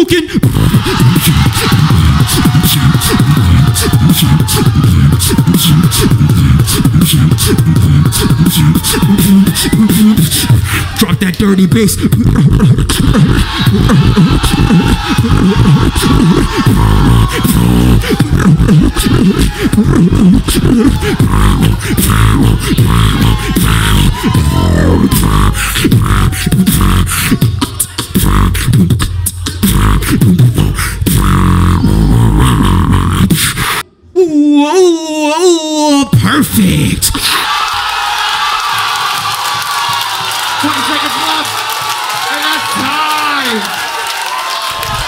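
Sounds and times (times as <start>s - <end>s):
beatboxed clicks and snares: 0.0s - 33.9s
beatboxing wobbling bass: 0.0s - 37.4s, 40.6s - 43.7s.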